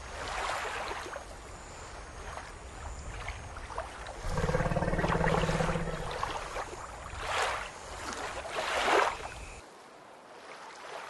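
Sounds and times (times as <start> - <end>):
water sloshing and splashing: 3.1 - 9.3
low steady pitched drone: 4.3 - 6.6.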